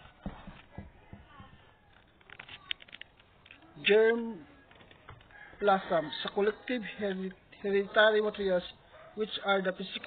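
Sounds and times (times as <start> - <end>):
faint irregular knocks: 0.0 - 2.1.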